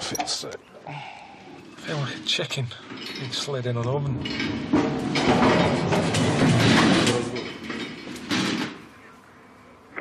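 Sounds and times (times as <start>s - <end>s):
door sliding and rumbling shut: 2.9s - 8.9s.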